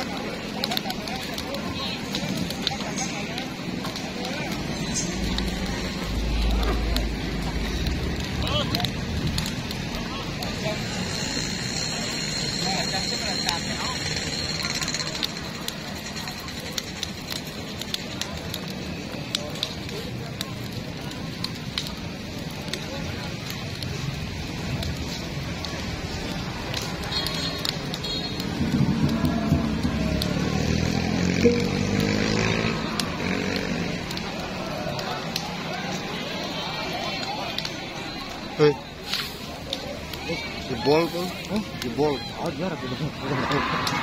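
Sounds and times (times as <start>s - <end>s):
fire crackling and popping: 0.0s - 44.0s
murmur of crowd voices: 0.0s - 44.0s.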